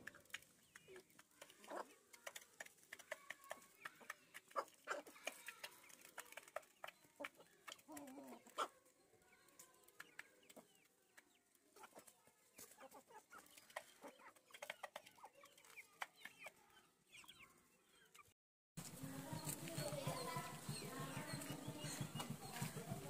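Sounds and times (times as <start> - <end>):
small clicks and taps: 0.0 - 8.1, 9.6 - 11.3
chickens clucking faintly: 0.0 - 23.0.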